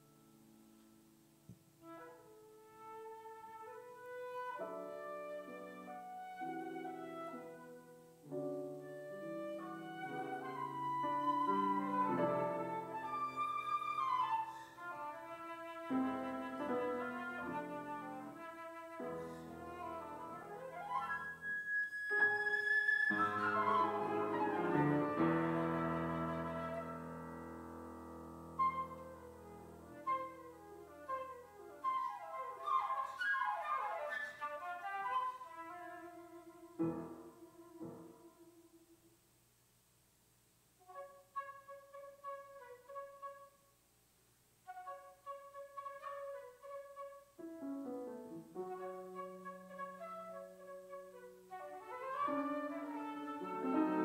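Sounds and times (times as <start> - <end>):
flute playing: 1.8 - 27.5, 28.4 - 38.9, 40.8 - 43.6, 44.7 - 47.5, 48.5 - 54.0
grand piano playing: 1.8 - 38.8, 44.7 - 54.0.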